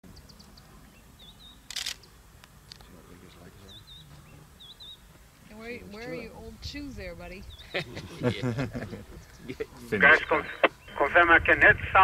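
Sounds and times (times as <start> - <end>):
bird chirping: 0.1 - 2.2, 3.2 - 6.2, 7.2 - 7.9, 8.9 - 11.1.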